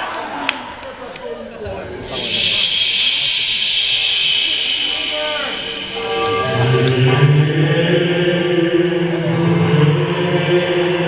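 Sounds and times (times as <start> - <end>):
faint crowd noise: 0.0 - 11.0
loud steady hiss: 1.8 - 9.2.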